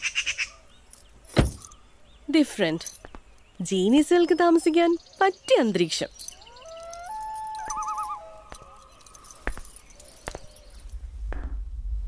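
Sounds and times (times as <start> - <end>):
whistled bird calls: 6.2 - 10.8
low rumble: 10.9 - 12.0.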